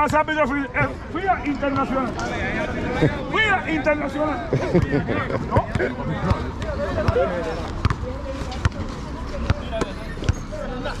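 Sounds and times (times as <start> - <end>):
faint voices: 0.0 - 11.0
basketball bouncing on concrete: 5.6 - 8.8.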